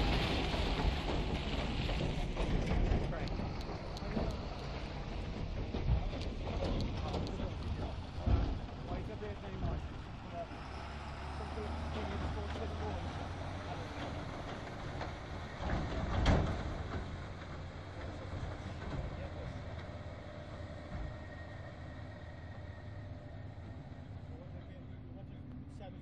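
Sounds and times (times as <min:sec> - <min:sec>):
tractor engine pulling: 0:00.0 - 0:26.0.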